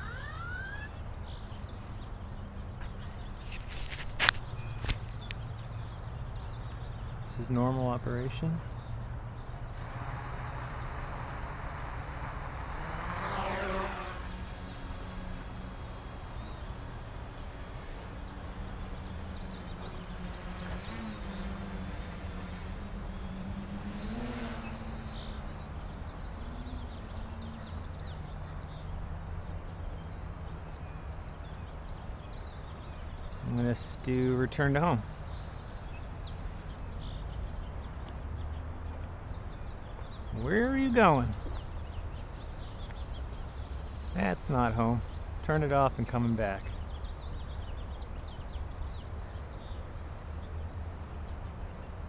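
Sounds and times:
quadcopter propellers buzzing: 0.0 - 1.0, 9.5 - 52.0.

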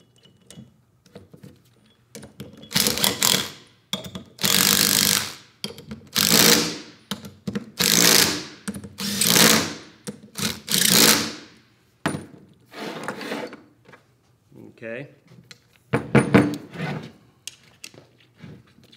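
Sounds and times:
impact driver bursts: 6.2 - 6.9, 7.8 - 11.5.

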